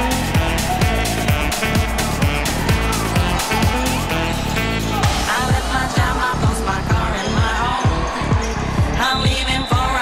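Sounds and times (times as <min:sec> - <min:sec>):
electronic dance-pop music: 0:00.0 - 0:10.0
steady kick drum: 0:00.0 - 0:10.0.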